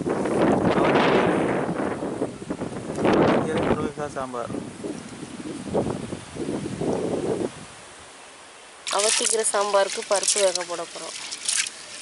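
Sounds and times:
wind on microphone: 0.0 - 7.8
faint steady hiss: 1.8 - 12.0
leafy branches rustling: 7.8 - 12.0.

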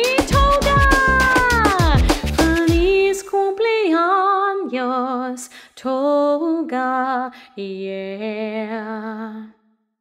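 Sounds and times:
celebration song with steady beat: 0.0 - 3.0.

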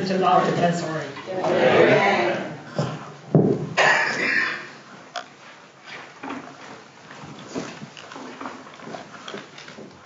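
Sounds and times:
congregation movement sounds: 0.0 - 4.8.

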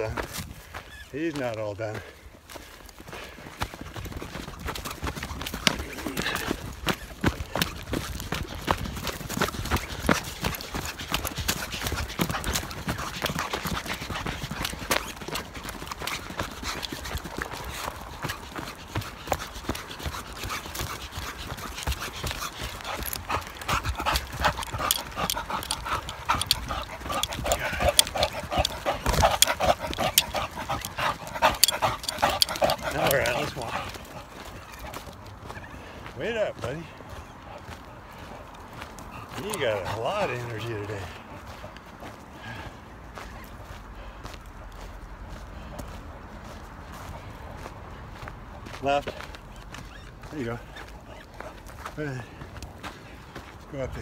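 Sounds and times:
dog panting: 0.0 - 54.0
running footsteps on dirt: 0.0 - 54.0.

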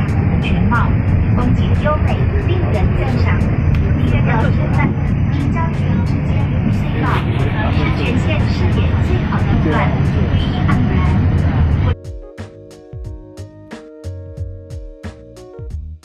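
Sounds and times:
train rumble inside carriage: 0.0 - 12.0
voices: 0.0 - 12.0
background music: 0.0 - 16.0.

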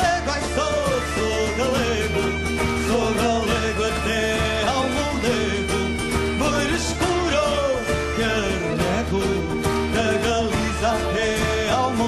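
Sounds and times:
bagpipe melody: 0.0 - 12.0
drums steady beat: 0.0 - 12.0
guitars: 0.0 - 12.0.

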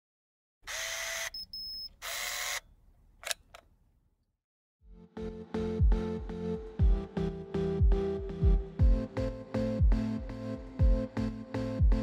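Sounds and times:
camera lens motor whirring: 0.6 - 3.6
high beep: 1.4 - 1.9
camera shutter clicks: 2.0 - 3.6.

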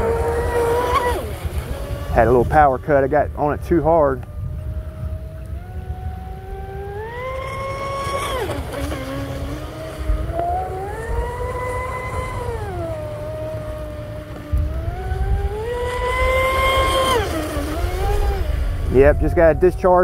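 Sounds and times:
electric motor whining: 0.0 - 20.0.

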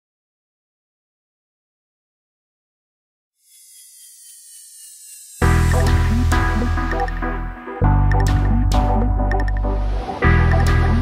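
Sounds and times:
thin falling whistle tones: 3.4 - 5.7
airy electronic hiss: 3.4 - 6.8.

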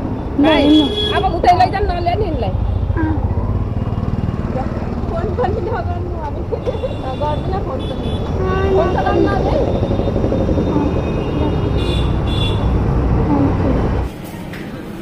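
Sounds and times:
road traffic rumble: 0.0 - 15.0
people talking and laughing: 4.5 - 11.6.

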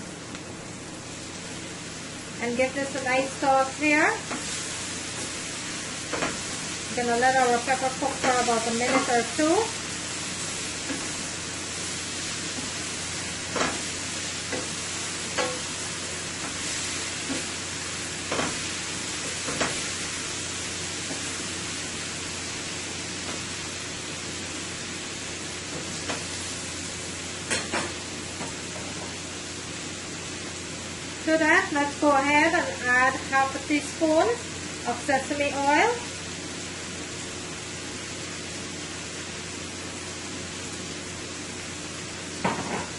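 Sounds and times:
vegetables sizzling in oil: 0.0 - 42.9.

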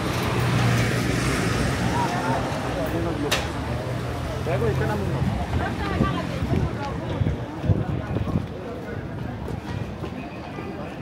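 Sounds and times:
crowd chatter: 0.0 - 11.0
traffic: 0.0 - 11.0.

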